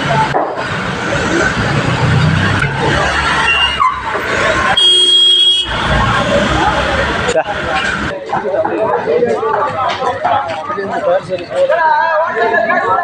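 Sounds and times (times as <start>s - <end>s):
noisy background: 0.0s - 13.0s
people's voices: 0.0s - 13.0s
vehicle horn: 4.7s - 6.0s.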